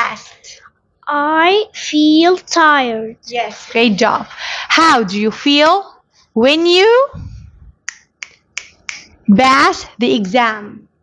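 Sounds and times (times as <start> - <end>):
finger snaps: 7.8 - 9.2.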